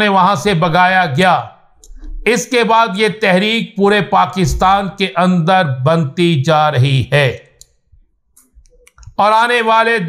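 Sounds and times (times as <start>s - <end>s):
man speaking: 0.0s - 1.5s, 2.2s - 7.5s, 9.2s - 10.0s
mouth clicks and lip smacks: 7.4s - 9.2s.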